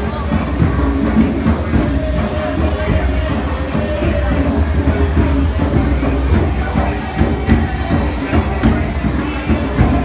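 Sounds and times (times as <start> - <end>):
fountain water cascading: 0.0 - 10.0.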